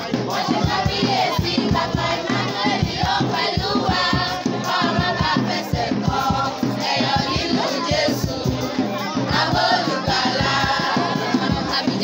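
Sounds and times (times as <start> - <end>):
children's choir singing: 0.0 - 12.0.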